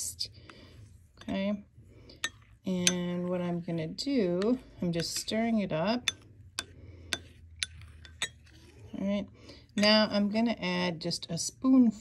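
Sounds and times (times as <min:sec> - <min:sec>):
metal spoon clinking on glass bowl: 0:02.2 - 0:03.2, 0:06.0 - 0:08.4.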